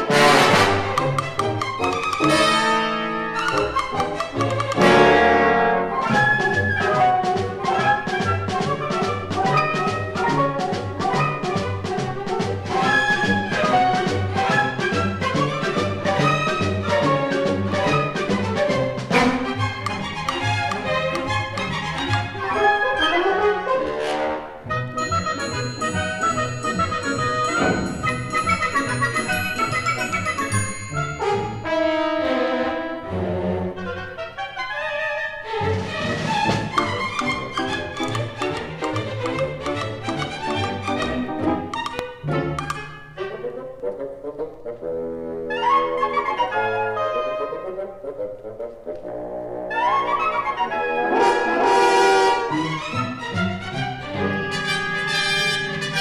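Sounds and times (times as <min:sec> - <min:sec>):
orchestral music with brass and strings: 0:00.0 - 0:56.0
sharp percussive hits: 0:00.6 - 0:02.6, 0:25.6 - 0:30.0
sharp orchestral hit: 0:26.5 - 0:29.4, 0:50.8 - 0:53.0.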